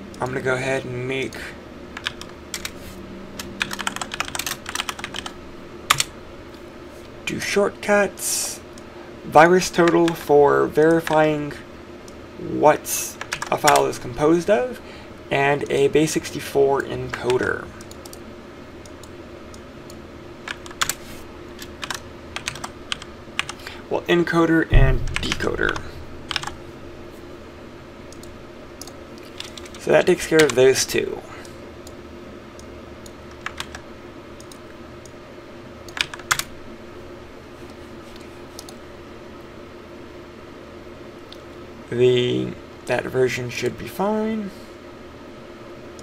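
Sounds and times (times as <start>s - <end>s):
faint steady hum: 0.0s - 46.0s
computer keyboard typing: 2.0s - 2.8s, 3.4s - 6.1s, 13.2s - 13.9s, 20.5s - 21.0s, 21.6s - 23.6s, 24.8s - 26.6s, 28.1s - 29.8s, 32.6s - 33.8s, 35.9s - 36.5s
loud key click: 24.8s - 26.6s.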